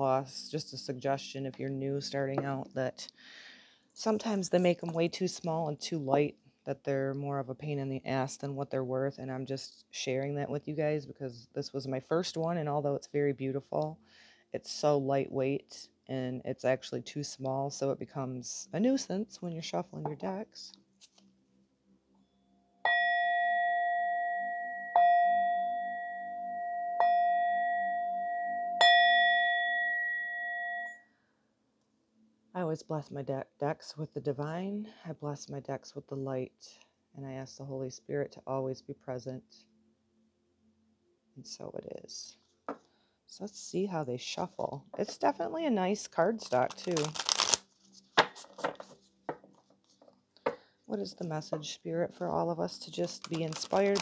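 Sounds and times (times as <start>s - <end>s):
bell-like metal instrument ringing: 22.9s - 31.1s
cards riffling: 46.4s - 50.0s, 53.0s - 54.0s.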